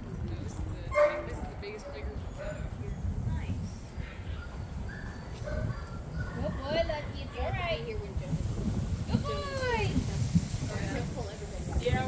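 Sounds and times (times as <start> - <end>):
dog barking: 1.0 - 2.5, 4.0 - 7.1.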